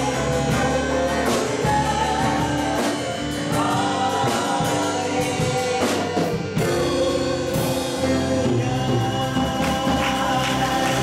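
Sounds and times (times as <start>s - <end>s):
group singing gospel song: 0.0s - 11.0s.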